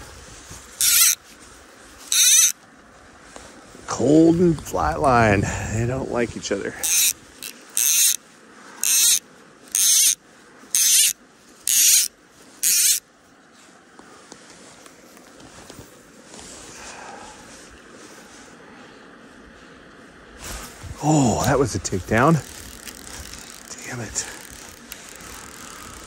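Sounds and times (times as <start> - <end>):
faint steady background noise: 0.0 - 26.0
fly line being stripped in: 0.8 - 1.2, 2.0 - 2.6, 6.8 - 8.2, 8.8 - 13.0, 21.4 - 26.0.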